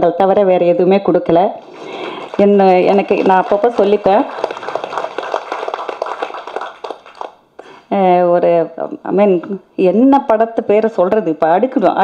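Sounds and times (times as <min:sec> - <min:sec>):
audience applauding: 0:01.6 - 0:07.4.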